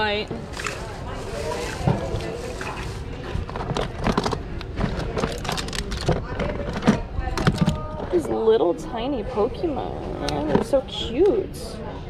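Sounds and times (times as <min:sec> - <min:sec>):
plastic toys clattering: 0:00.4 - 0:08.1.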